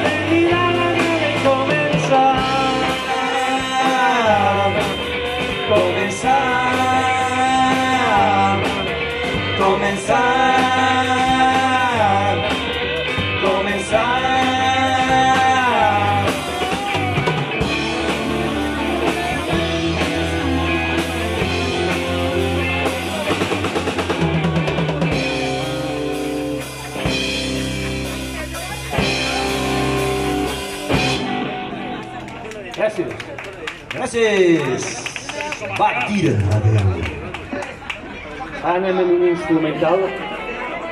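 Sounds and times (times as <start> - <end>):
live rock band playing: 0.0 - 39.4.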